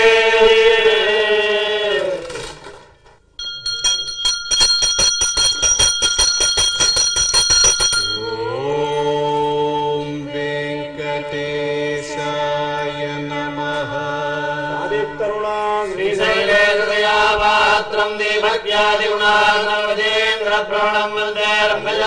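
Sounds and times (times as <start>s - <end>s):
hand bell ringing fast: 3.4s - 8.6s
chanting on a held note: 8.0s - 22.0s.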